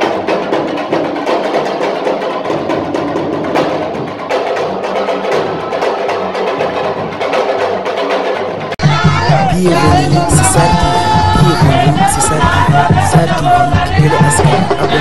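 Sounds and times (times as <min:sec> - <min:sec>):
fast drumming: 0:00.0 - 0:15.0.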